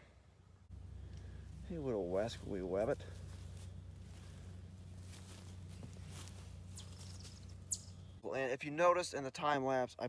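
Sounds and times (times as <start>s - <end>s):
small engine running faintly: 0.7s - 8.2s
high falling chirps: 5.8s - 8.2s.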